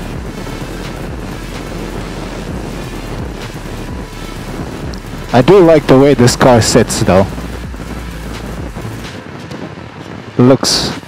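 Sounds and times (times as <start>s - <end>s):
low rumble: 0.0s - 11.0s
road and engine noise: 0.0s - 11.0s
wind rushing over microphone: 0.0s - 11.0s.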